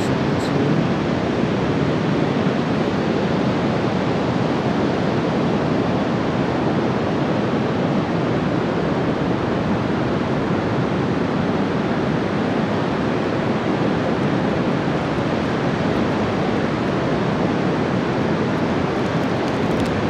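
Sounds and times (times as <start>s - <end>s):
ocean surf breaking: 0.0s - 20.0s.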